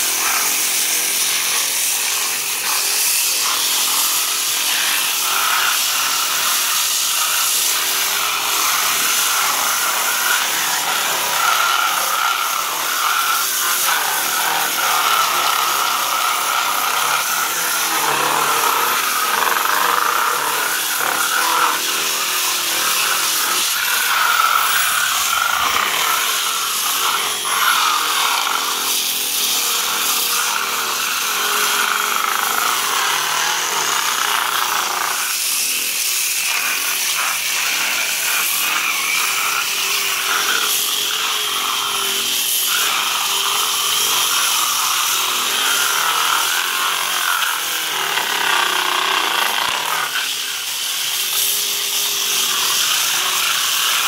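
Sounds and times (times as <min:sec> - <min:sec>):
angle grinders sanding plaster: 0:00.0 - 0:54.0.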